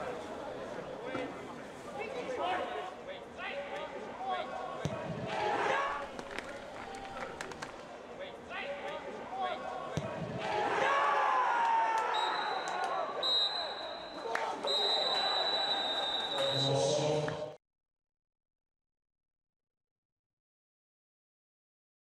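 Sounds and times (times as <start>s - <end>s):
players shouting: 3.6s - 7.8s, 8.4s - 17.0s.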